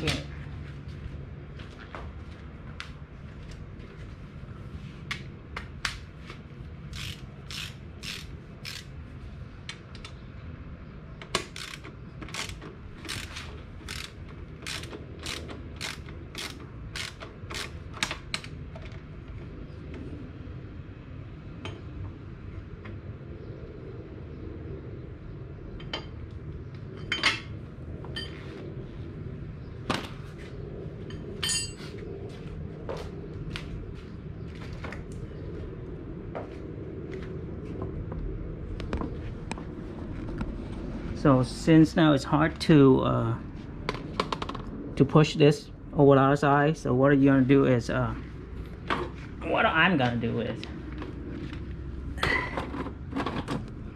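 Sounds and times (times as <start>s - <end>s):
ratchet wrench clicking: 6.9s - 8.9s, 11.3s - 18.5s.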